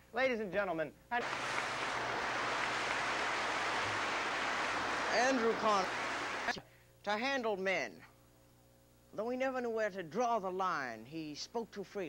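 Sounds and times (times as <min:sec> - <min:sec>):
audience applauding: 0:01.2 - 0:06.6.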